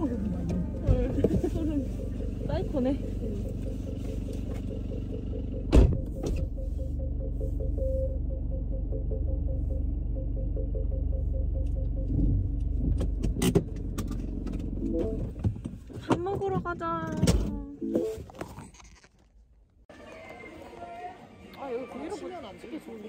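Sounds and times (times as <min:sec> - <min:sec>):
regular ticking: 0:00.0 - 0:15.5
car engine rumbling: 0:00.0 - 0:20.0.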